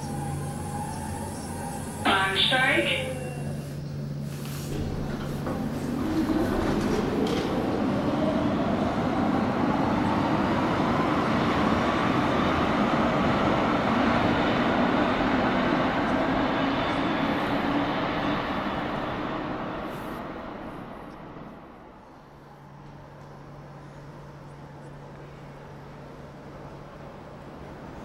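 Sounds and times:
train rumble: 0.0 - 28.0.

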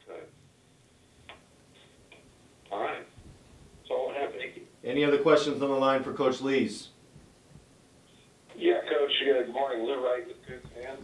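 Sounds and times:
man talking over telephone: 2.7 - 3.2, 3.8 - 7.0, 8.5 - 11.0.

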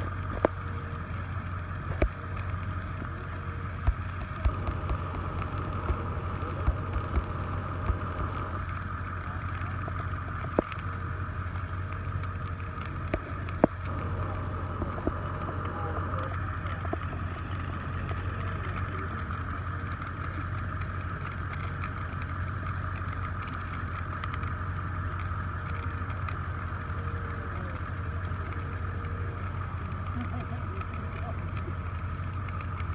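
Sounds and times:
engine idling: 0.0 - 32.9
vegetation crackling as it burns: 0.0 - 32.9.

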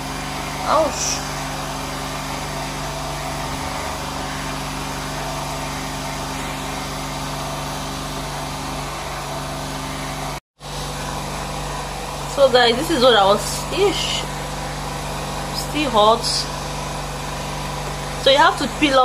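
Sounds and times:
motor humming: 0.0 - 19.0.

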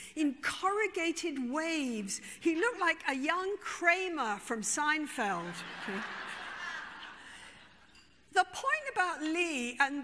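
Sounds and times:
audience laughing: 5.5 - 7.8.

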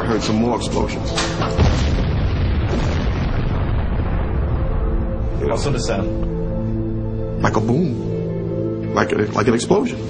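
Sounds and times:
explosion rumble: 1.4 - 7.2.

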